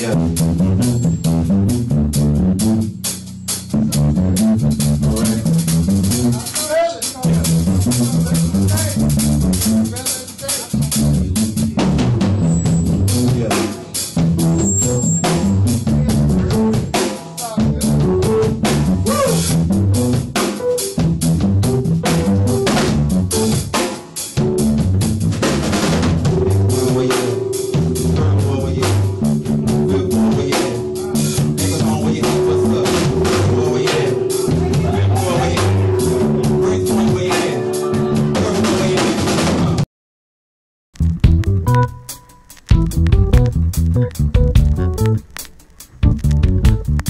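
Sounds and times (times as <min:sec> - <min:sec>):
bass line: 0:00.0 - 0:06.5, 0:07.2 - 0:10.0, 0:10.7 - 0:13.6, 0:14.2 - 0:17.0, 0:17.6 - 0:23.8, 0:24.4 - 0:39.8, 0:41.0 - 0:45.4, 0:46.0 - 0:47.0
drum kit beat: 0:00.0 - 0:39.8, 0:41.0 - 0:47.0
instrumental band groove: 0:00.0 - 0:39.8, 0:41.0 - 0:47.0.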